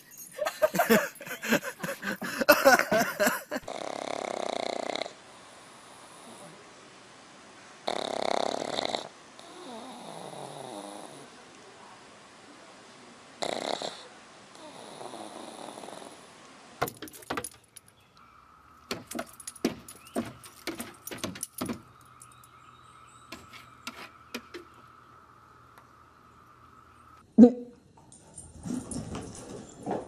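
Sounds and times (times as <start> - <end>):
dog snoring: 3.6 - 6.6, 7.8 - 11.3, 13.4 - 16.3
dog claws pawing wooden boards: 18.9 - 21.9.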